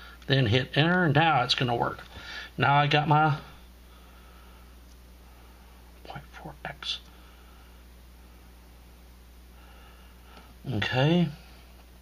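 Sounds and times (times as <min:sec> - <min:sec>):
low electrical hum: 0:00.0 - 0:12.0
man whispering: 0:06.0 - 0:07.1.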